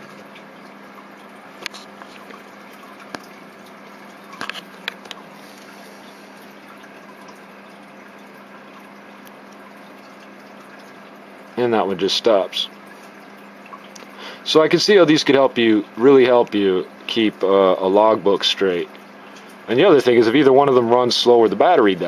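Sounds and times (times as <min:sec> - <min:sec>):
low hum and hiss: 0:00.0 - 0:22.0.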